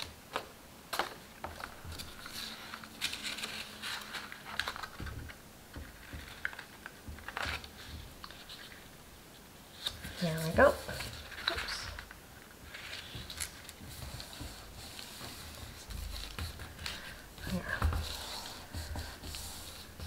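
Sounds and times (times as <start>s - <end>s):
paper rustling: 0.0s - 8.9s, 9.7s - 20.0s.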